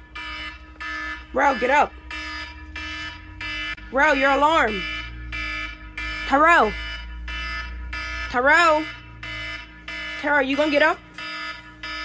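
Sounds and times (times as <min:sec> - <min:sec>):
alarm short beeps: 0:00.9 - 0:08.9.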